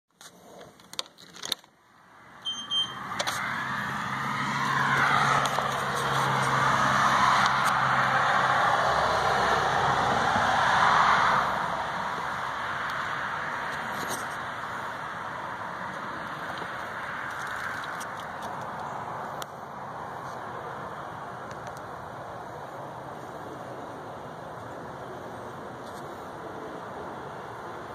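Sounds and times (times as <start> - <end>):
steady outdoor hiss: 0.2 - 27.9
car passing by: 2.1 - 21.4
short electronic beep: 2.4 - 3.0.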